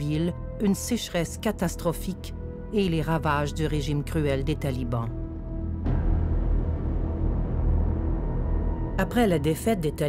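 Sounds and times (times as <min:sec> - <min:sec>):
low rumbling drone music: 0:00.0 - 0:10.0.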